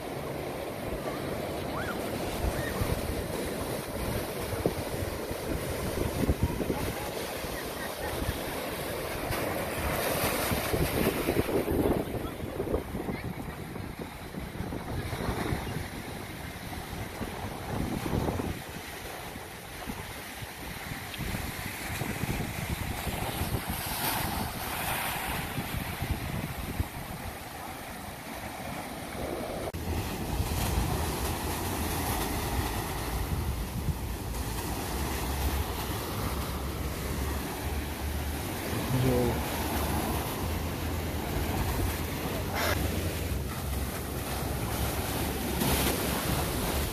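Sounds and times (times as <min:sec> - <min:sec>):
wind buffeting microphone: 0:08.2 - 0:27.6.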